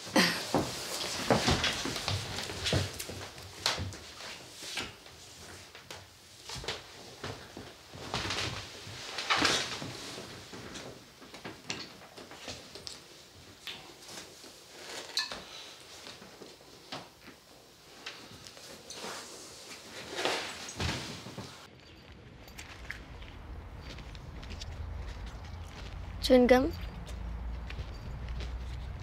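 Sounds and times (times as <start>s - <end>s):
clothing rustling: 0.4s - 21.7s.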